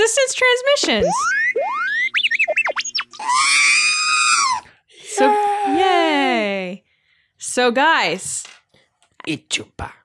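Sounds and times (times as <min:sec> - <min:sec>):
warbling electronic beeps: 0:00.9 - 0:03.8
electronic rising sweeps: 0:01.0 - 0:03.8.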